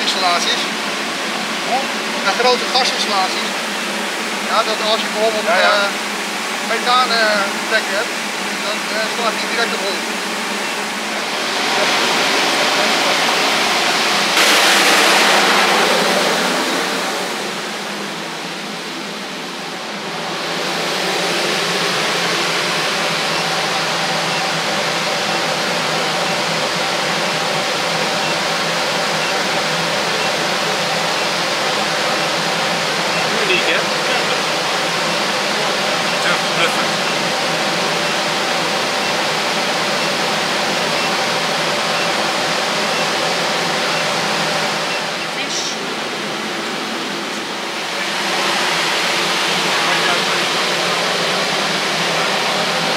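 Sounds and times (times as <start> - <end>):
air cleaner fan blowing: 0.0 - 52.9
faint hum: 0.0 - 52.9.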